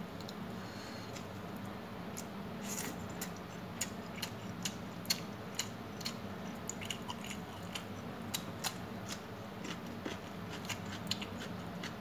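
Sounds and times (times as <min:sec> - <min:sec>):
person chewing food: 0:02.2 - 0:12.0.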